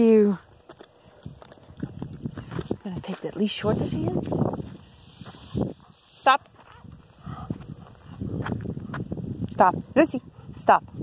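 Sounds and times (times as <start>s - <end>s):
footsteps scuffing on dirt: 0.5s - 9.3s
woman calling to a dog: 9.5s - 11.0s.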